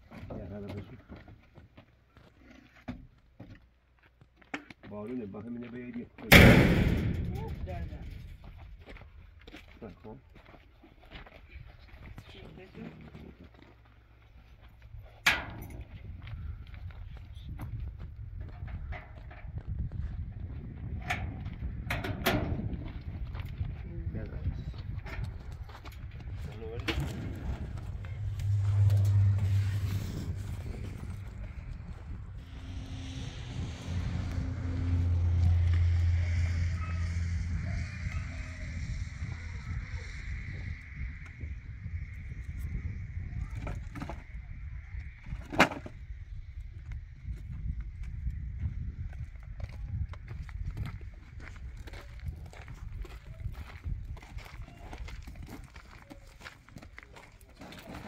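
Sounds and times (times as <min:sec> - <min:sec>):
low rumbling background: 0:06.3 - 0:09.4, 0:14.9 - 0:45.2.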